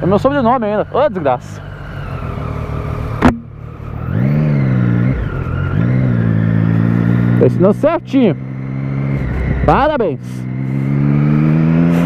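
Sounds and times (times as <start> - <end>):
motorcycle engine accelerating: 0.0 - 12.0
sharp knock: 3.2 - 3.5.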